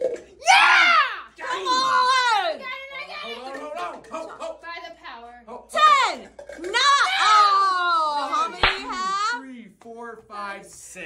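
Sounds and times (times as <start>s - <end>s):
loud high yell: 0.4s - 3.3s, 5.7s - 9.4s
excited voices shouting: 0.4s - 3.5s, 5.7s - 9.4s.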